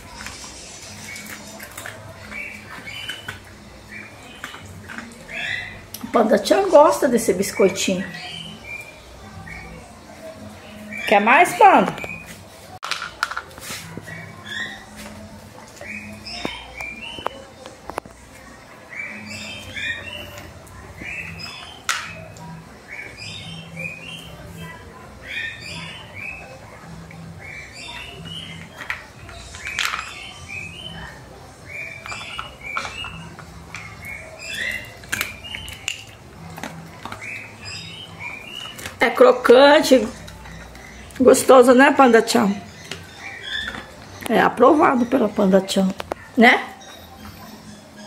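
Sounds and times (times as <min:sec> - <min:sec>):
bird chirping: 0:00.0 - 0:12.5, 0:14.0 - 0:17.6, 0:18.8 - 0:48.0.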